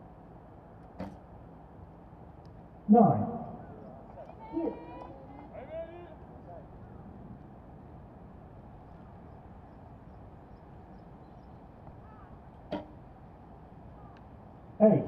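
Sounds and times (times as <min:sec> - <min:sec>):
faint outdoor ambience: 0:00.0 - 0:15.0
bow string snapping: 0:01.0 - 0:01.2.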